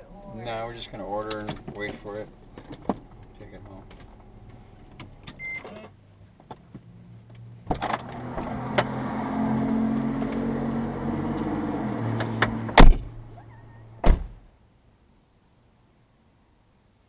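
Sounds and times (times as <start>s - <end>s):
electric motor hum: 0.2s - 5.4s
car door shutting thud: 1.2s - 5.8s, 12.1s - 13.3s, 14.0s - 14.4s
car door opening click: 1.2s - 5.9s, 11.3s - 13.2s, 14.0s - 14.4s.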